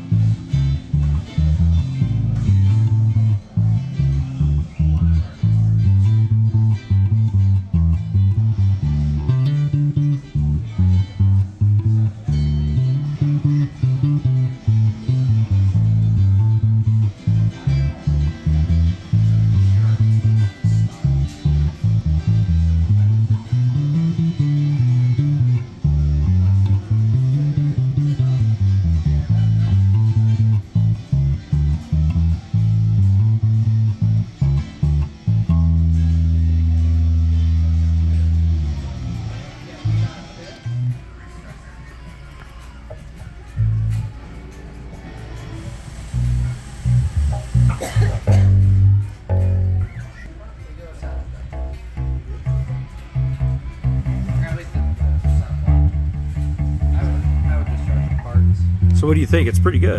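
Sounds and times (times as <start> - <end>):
bass guitar played fingerstyle: 0.0 - 59.9.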